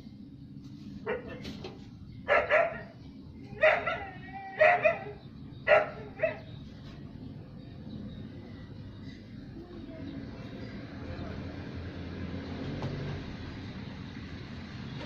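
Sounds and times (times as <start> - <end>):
dog barking: 1.0 - 1.6, 2.3 - 3.0, 3.6 - 6.5.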